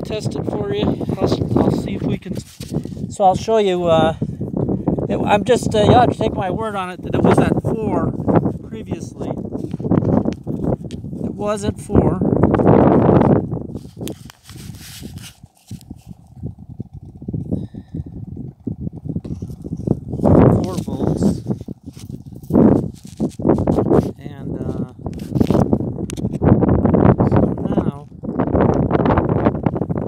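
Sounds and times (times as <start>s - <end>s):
man talking indistinctly: 0.0s - 2.4s, 3.1s - 4.2s, 5.1s - 9.4s, 11.3s - 12.3s, 20.5s - 21.4s, 24.1s - 25.0s, 27.2s - 28.1s.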